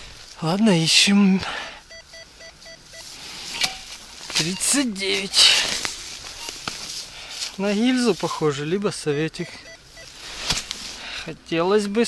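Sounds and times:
metal detector beeps: 1.9s - 5.7s, 6.3s - 6.6s, 9.4s - 10.2s.

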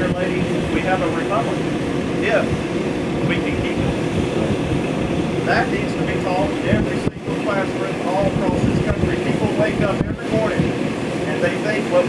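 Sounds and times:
outdoor low rumble: 0.0s - 12.0s
faint spoken sounds: 3.3s - 4.6s.

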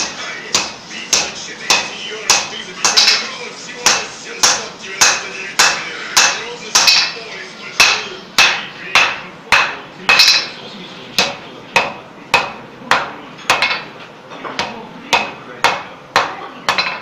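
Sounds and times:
hammer striking steel on anvil: 0.0s - 7.2s, 7.8s - 10.6s, 11.2s - 14.0s, 14.6s - 17.0s.

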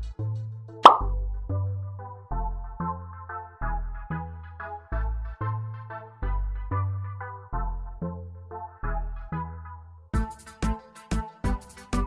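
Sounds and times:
short pop: 0.8s - 1.1s
upbeat electronic music: 0.8s - 1.3s.

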